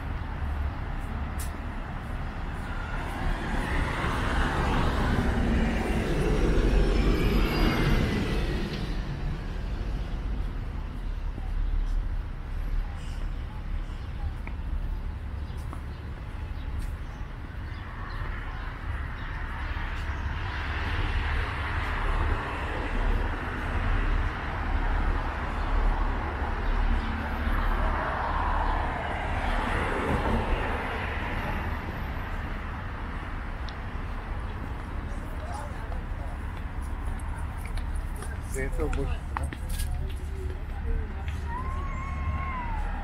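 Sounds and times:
traffic noise: 0.0 - 43.0
voices of passers-by: 0.0 - 43.0.

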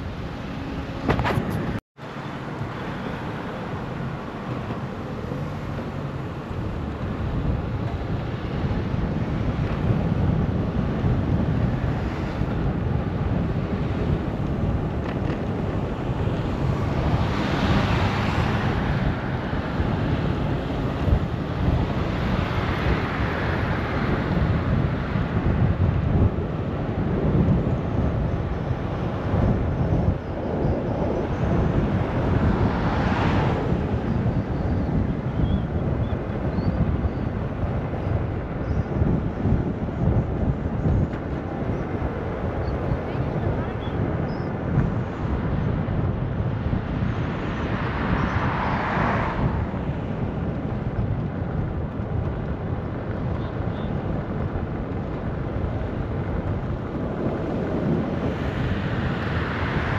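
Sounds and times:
low riding rumble: 0.0 - 59.9
wind buffeting microphone: 0.0 - 59.9.

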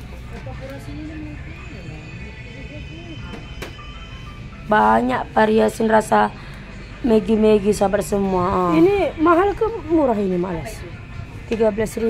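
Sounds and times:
in-store music: 0.0 - 12.0.

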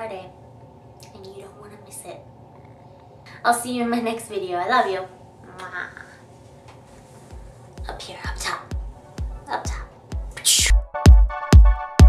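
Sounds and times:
kick drum beat: 7.3 - 12.0
electronic music: 7.4 - 12.0.

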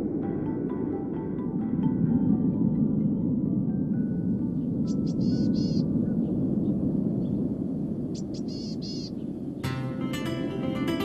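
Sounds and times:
steady low rumble: 0.0 - 11.0
small bird chirping: 4.9 - 6.4, 8.1 - 9.3.

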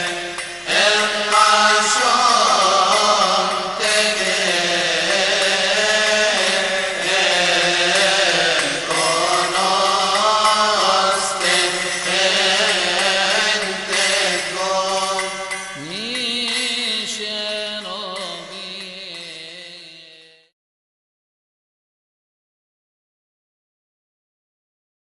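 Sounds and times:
chanted hymn vocals: 0.0 - 20.4.

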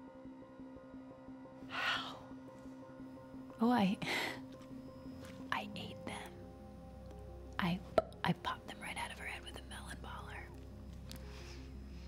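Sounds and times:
quiet film score: 0.0 - 12.0
woman whispering: 5.5 - 6.4, 7.6 - 10.6.

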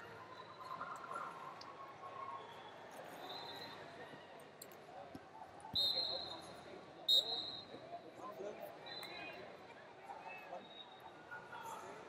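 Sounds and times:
crowd chatter: 0.0 - 12.0
referee whistle blasts: 5.8 - 6.3, 7.1 - 7.7.

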